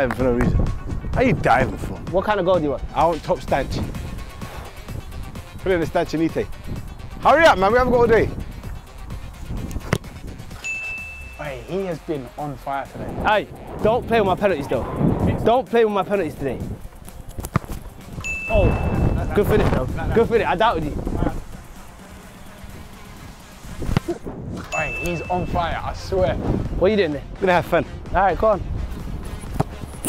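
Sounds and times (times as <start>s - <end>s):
background music: 0.0s - 30.0s
football kick thud: 9.8s - 10.2s, 17.4s - 17.8s, 23.8s - 24.2s
high-pitched ding: 10.6s - 11.8s, 18.2s - 19.3s, 24.7s - 25.8s
voices: 10.6s - 17.3s, 17.9s - 23.2s, 24.0s - 28.6s.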